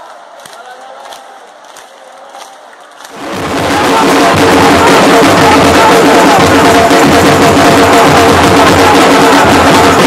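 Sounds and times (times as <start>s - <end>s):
stadium crowd chanting: 0.0s - 10.0s.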